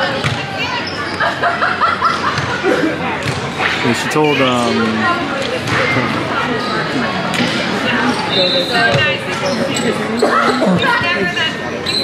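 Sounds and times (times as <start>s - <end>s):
voices talking in echoing hall: 0.0s - 12.0s.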